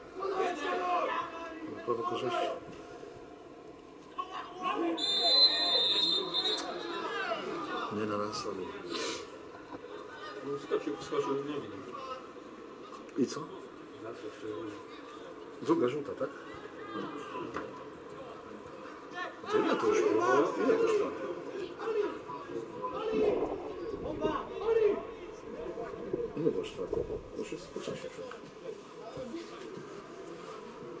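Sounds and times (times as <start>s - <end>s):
spectators' voices: 0.0s - 31.0s
referee's whistle blast: 5.0s - 6.8s
distant people talking: 16.3s - 31.0s.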